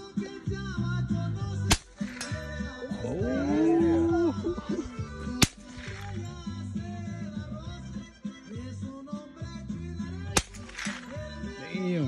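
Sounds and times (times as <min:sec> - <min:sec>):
music playing: 0:00.0 - 0:12.0
rifle shot: 0:01.7 - 0:02.5, 0:05.4 - 0:06.2, 0:10.3 - 0:11.2.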